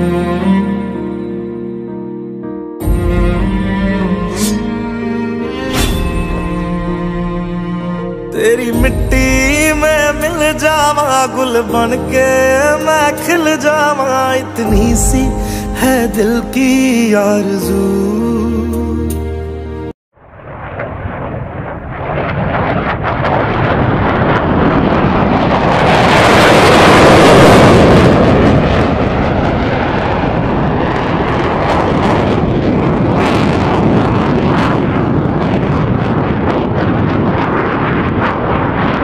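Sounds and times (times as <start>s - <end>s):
loud rushing roar: 2.8s - 11.8s, 20.2s - 39.0s
scattered crackles: 20.3s - 39.0s.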